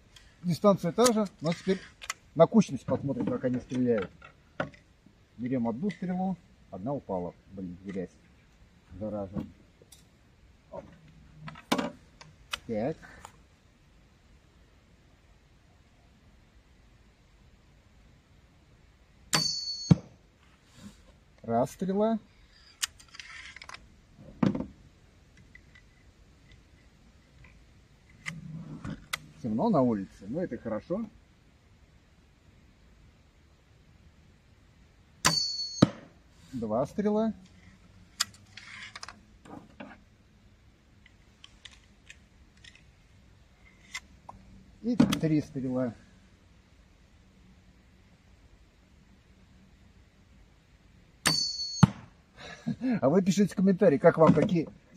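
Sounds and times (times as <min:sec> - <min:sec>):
crossbow clicks and rattles: 0:01.0 - 0:02.3, 0:22.5 - 0:23.9, 0:25.3 - 0:29.3, 0:37.6 - 0:39.2, 0:41.0 - 0:43.0
arrow thudding into target: 0:35.3 - 0:36.2.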